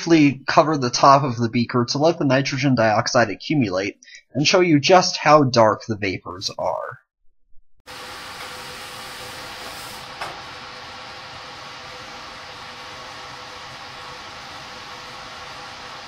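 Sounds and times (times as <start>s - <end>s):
exhaust fan rushing airflow: 7.9s - 16.0s.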